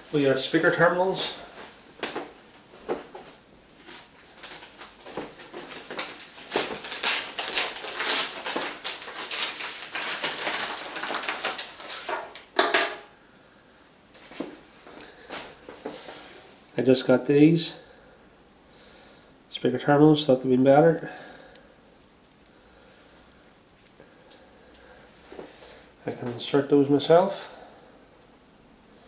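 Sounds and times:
padded envelope crinkling: 0:04.0 - 0:12.5.

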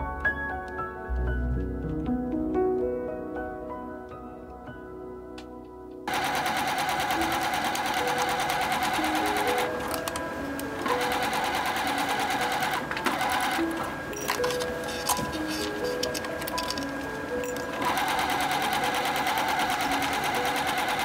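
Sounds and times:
soft background music: 0:00.0 - 0:21.0
sewing machine stitching: 0:06.1 - 0:10.0, 0:10.8 - 0:16.0, 0:17.6 - 0:21.0.

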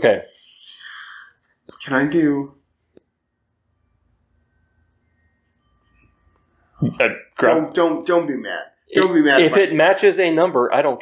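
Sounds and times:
faint thin steady tones: 0:00.0 - 0:10.9
faint low hum: 0:00.0 - 0:11.0
man's voice: 0:06.8 - 0:11.0.

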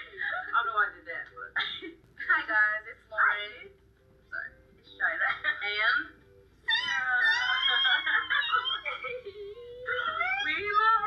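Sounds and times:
young women talking: 0:04.4 - 0:09.2, 0:09.9 - 0:11.0
young women squealing excitedly: 0:06.7 - 0:09.2.

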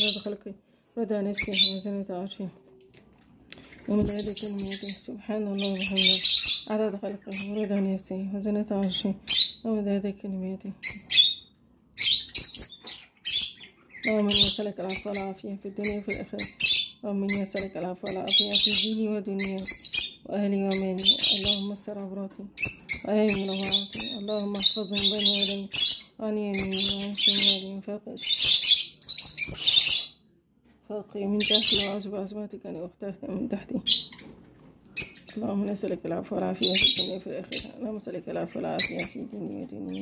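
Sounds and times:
birds chirping: 0:00.0 - 0:30.4, 0:31.0 - 0:40.0.

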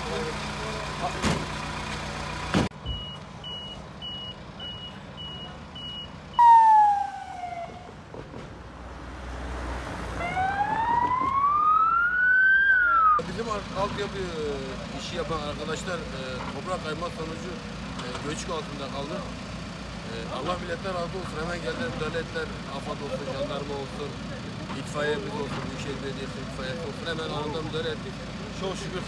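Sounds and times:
short high beeps: 0:03.0 - 0:07.5
ambulance siren wailing: 0:06.4 - 0:08.0, 0:10.2 - 0:13.2.

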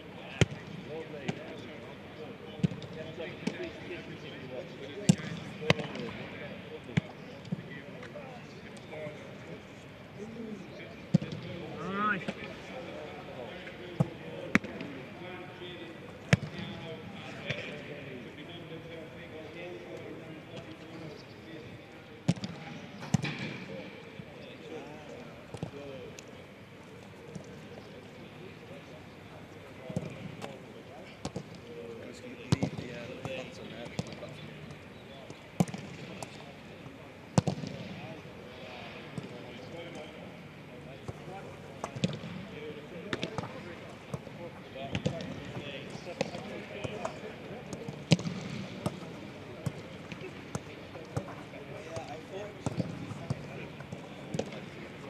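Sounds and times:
faint players' voices: 0:00.0 - 0:55.0.

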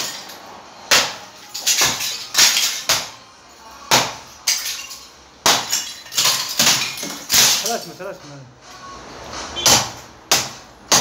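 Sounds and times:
brick pieces clattering: 0:00.0 - 0:03.1, 0:04.4 - 0:08.0
hammer breaking clay bricks: 0:00.8 - 0:03.2, 0:03.9 - 0:04.8, 0:05.4 - 0:07.8, 0:09.6 - 0:11.0.

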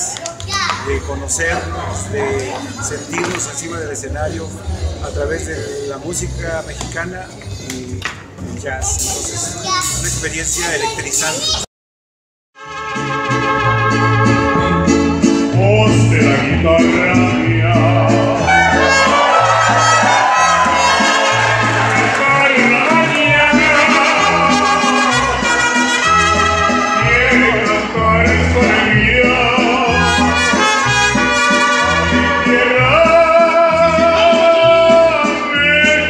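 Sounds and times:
mariachi band music: 0:00.0 - 0:11.6, 0:12.6 - 0:36.0
trumpets: 0:12.6 - 0:14.9, 0:18.4 - 0:27.5, 0:29.9 - 0:32.8
bass line: 0:12.7 - 0:36.0
strummed guitars: 0:12.7 - 0:36.0
person singing: 0:15.5 - 0:36.0.

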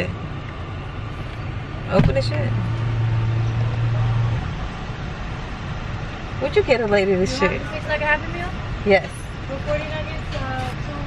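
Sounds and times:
car idling: 0:00.0 - 0:11.0.

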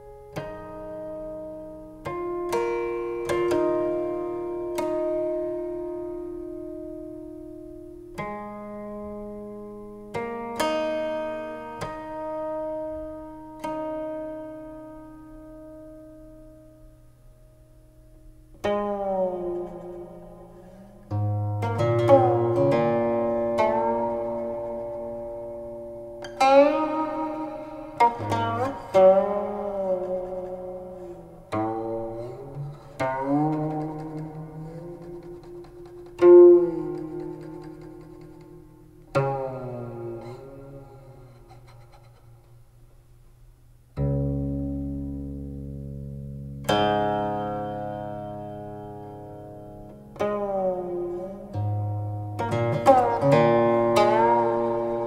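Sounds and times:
plucked zither solo: 0:00.0 - 0:16.6, 0:18.5 - 0:42.4, 0:44.0 - 0:55.0.

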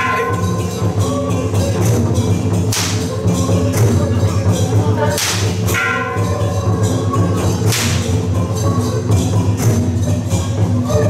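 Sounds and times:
background music: 0:00.0 - 0:11.0
whip cracking: 0:02.7 - 0:03.1, 0:05.2 - 0:05.7, 0:07.7 - 0:08.1.

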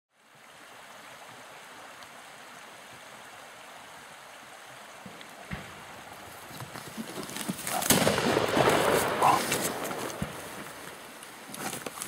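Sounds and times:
animal crashing through scrub: 0:06.3 - 0:10.8
gunshot: 0:07.7 - 0:10.4.

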